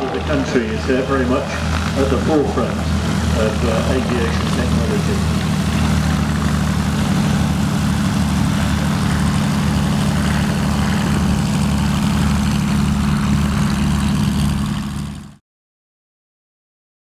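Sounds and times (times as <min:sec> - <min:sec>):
propeller aircraft taxiing: 0:00.0 - 0:15.4.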